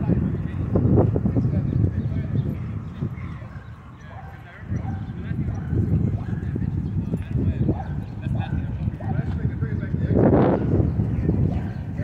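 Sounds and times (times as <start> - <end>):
people's voices: 0.0 - 12.0
distant dogs barking: 1.9 - 12.0.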